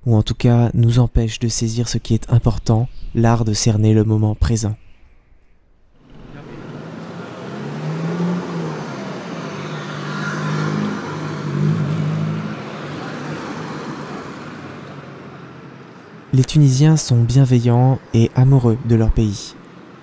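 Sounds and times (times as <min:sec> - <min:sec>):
street traffic: 0:05.8 - 0:20.0
motor vehicle passing: 0:05.9 - 0:20.0.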